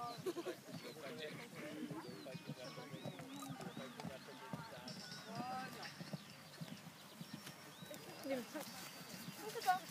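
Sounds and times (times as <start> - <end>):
horse galloping on grass: 0.0 - 9.9.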